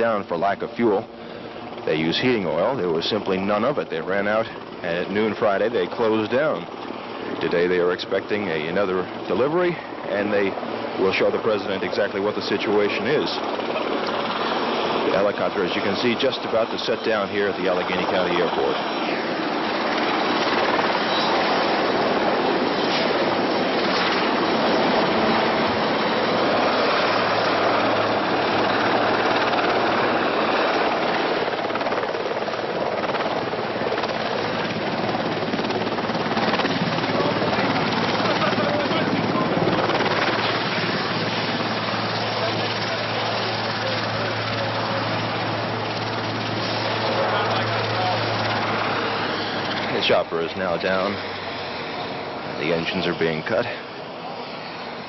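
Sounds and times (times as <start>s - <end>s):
helicopter rotor and turbines: 0.0s - 55.0s.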